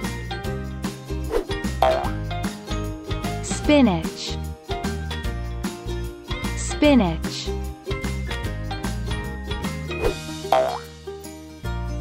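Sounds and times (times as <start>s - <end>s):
upbeat children's music: 0.0s - 12.0s.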